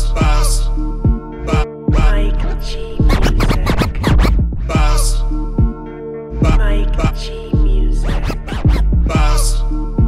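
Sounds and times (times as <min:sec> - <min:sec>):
person rapping: 0:00.0 - 0:05.8, 0:06.4 - 0:09.8
hip hop beat with heavy bass: 0:00.0 - 0:10.0
turntable scratches: 0:02.5 - 0:04.9, 0:08.0 - 0:09.3.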